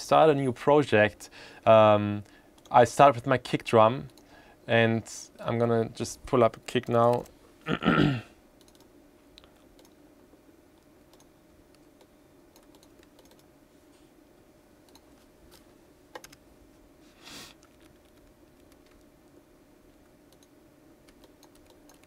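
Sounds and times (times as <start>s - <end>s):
low steady hum: 0.0s - 22.0s
keyboard and mouse clicks: 8.6s - 10.0s, 11.1s - 13.5s, 14.9s - 15.1s, 16.1s - 16.4s, 17.6s - 19.1s, 20.3s - 22.0s.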